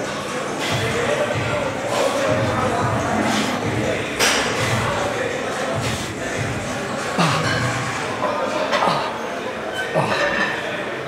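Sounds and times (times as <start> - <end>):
background music: 0.0 - 9.1
people talking: 0.0 - 11.0.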